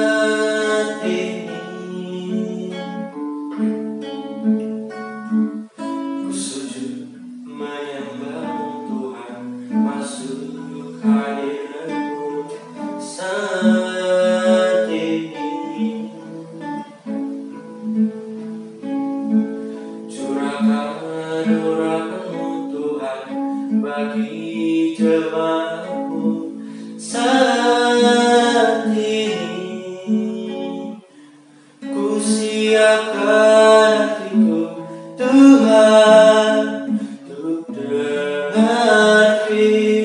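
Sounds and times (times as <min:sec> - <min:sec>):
man singing: 0:00.0 - 0:03.7, 0:06.2 - 0:18.0, 0:18.7 - 0:40.0
strummed acoustic guitar: 0:00.0 - 0:40.0.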